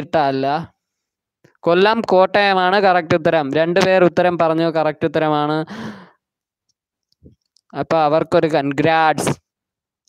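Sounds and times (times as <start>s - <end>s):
breathy sigh: 5.7s - 6.2s.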